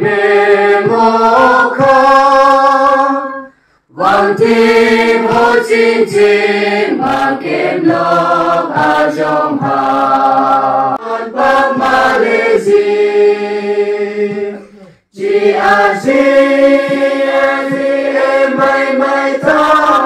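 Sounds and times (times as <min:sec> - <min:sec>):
congregation singing a hymn: 0:00.0 - 0:20.0.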